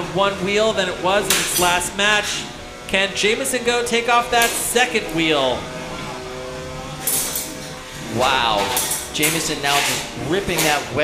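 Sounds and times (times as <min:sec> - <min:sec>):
steady hum of tones: 0:00.0 - 0:11.0
spinning weapon grinding and scraping: 0:07.0 - 0:11.0.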